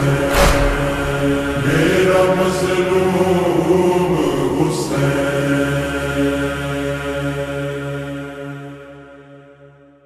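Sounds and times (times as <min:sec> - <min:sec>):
reverberant chanted lament: 0:00.0 - 0:09.9.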